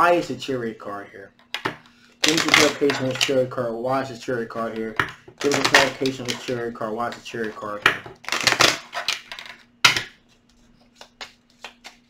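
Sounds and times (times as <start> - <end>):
cards snapping: 1.6 - 3.4, 5.1 - 12.0
cards rustling: 1.8 - 3.4, 4.6 - 12.0.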